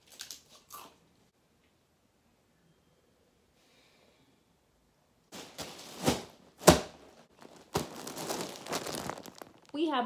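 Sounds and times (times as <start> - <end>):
plastic mailer package rustling: 5.3 - 10.0.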